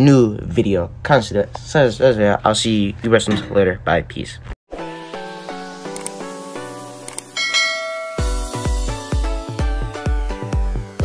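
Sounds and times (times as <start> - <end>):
short clicks: 7.0 - 7.3
notification bell ding: 7.4 - 8.7
outro music with bell-like notes: 7.4 - 9.8.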